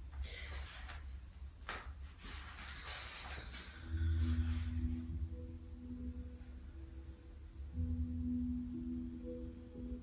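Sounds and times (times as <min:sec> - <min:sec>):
rustling on yoga mat: 0:00.0 - 0:05.4
low steady hum: 0:00.0 - 0:10.0.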